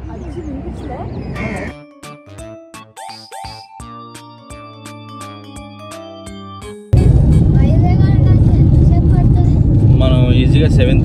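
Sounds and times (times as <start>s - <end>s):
short music jingle: 1.6s - 8.9s
car rumble inside cabin: 6.9s - 11.0s.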